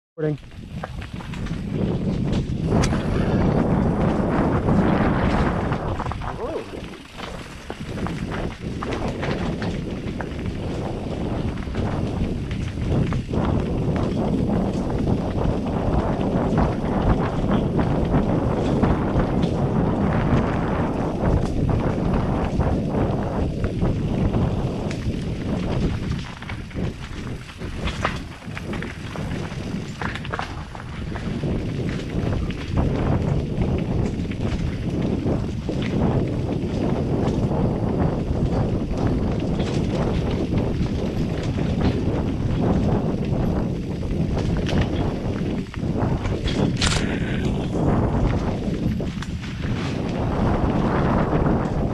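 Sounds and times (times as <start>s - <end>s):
wind rushing over microphone: 0.2s - 51.9s
bike knocking and rattling: 0.3s - 51.9s
tyres grinding over dirt and rock: 0.4s - 51.9s.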